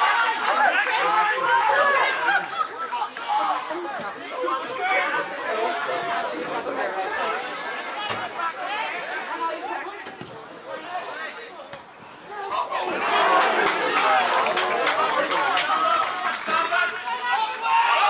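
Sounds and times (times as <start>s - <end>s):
many voices shouting and talking: 0.0s - 18.0s.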